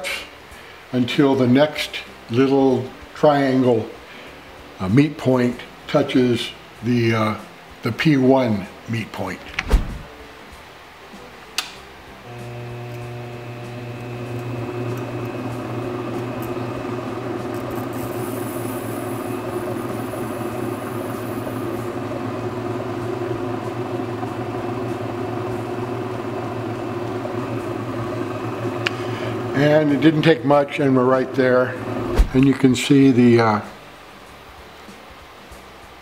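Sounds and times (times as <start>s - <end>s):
motor humming: 12.2s - 32.4s.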